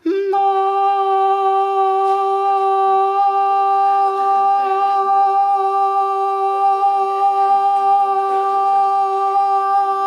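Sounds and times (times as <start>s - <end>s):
person singing a long note: 0.0s - 10.0s.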